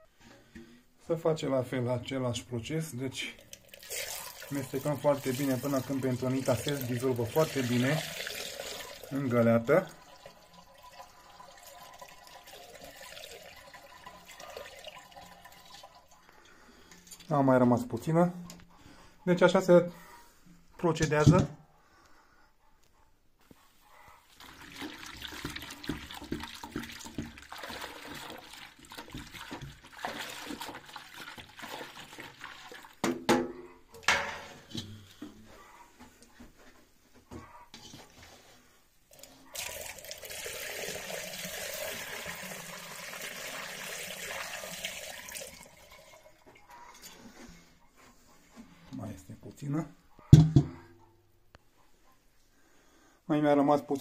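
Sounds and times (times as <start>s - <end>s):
wine pouring through funnel: 2.9s - 16.3s, 24.3s - 33.0s, 39.1s - 47.0s.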